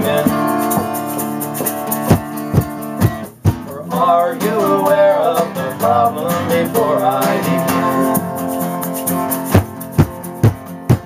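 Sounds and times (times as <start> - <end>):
hand shaker rattling: 0.0 - 5.4, 6.1 - 11.0
acoustic guitar strumming: 0.0 - 11.0.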